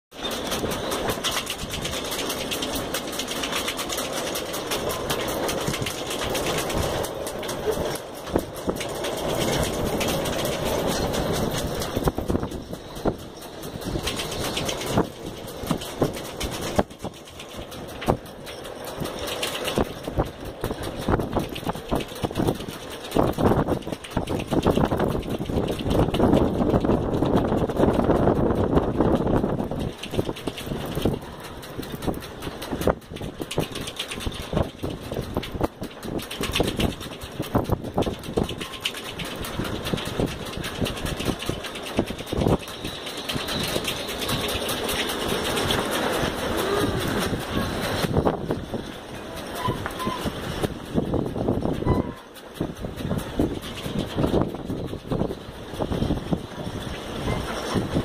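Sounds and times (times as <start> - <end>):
gusting wind on microphone: 0.1 - 58.0.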